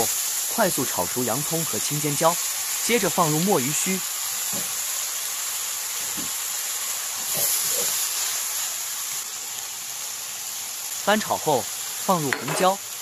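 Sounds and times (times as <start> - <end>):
food frying in hot oil: 0.0 - 13.0.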